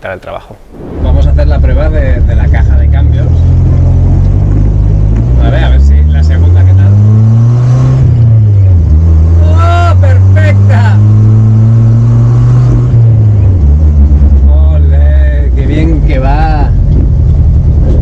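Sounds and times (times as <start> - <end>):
car engine accelerating through gears: 1.2 - 18.0.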